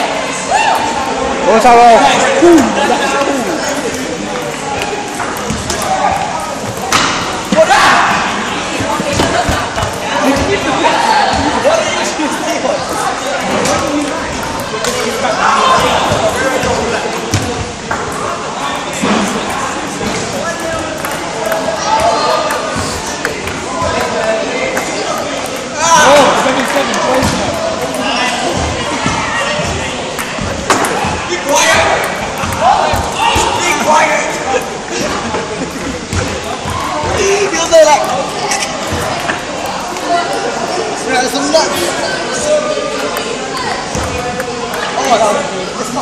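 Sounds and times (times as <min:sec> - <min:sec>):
boys talking: 0:00.0 - 0:46.0.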